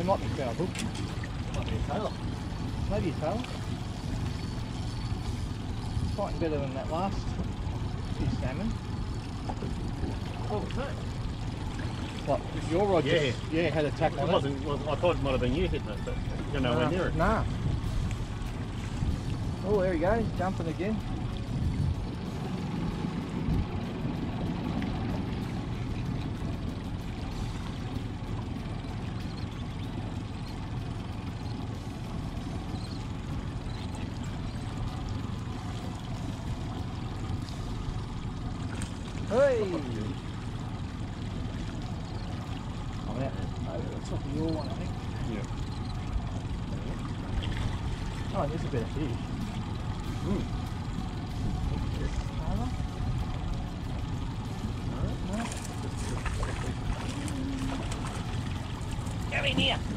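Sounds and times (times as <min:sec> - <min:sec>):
low rumble on a boat: 0:00.0 - 0:59.9.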